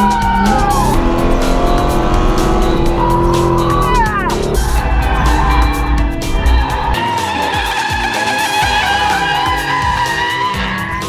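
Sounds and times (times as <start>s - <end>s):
background music: 0.0s - 11.0s
race car engine: 0.0s - 11.0s
tyres skidding: 0.0s - 11.0s.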